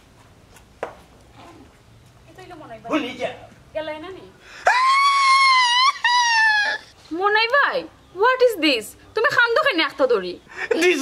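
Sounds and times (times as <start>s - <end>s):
falsetto crying-like wail: 4.6s - 6.9s.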